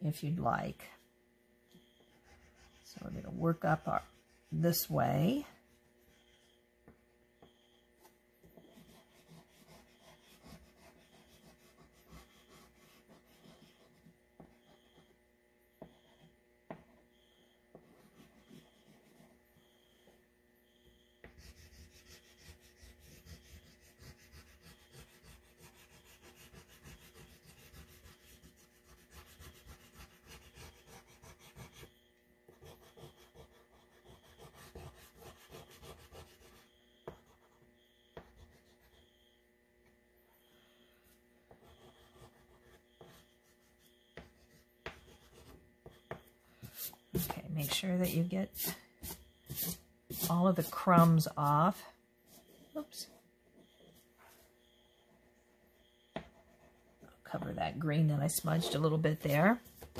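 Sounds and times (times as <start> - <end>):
oil pastel scratching on paper: 1.8 - 6.6, 7.5 - 15.2, 15.8 - 20.2, 21.2 - 39.2, 41.5 - 54.7, 56.2 - 59.9.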